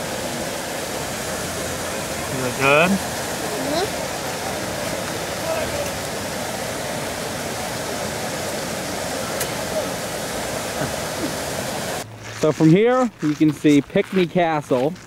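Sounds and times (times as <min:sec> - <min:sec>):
fountain water splashing: 0:00.0 - 0:15.0.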